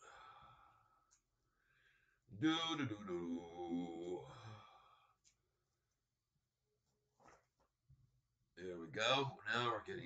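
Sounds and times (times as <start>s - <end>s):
faint breath: 0.0s - 2.3s.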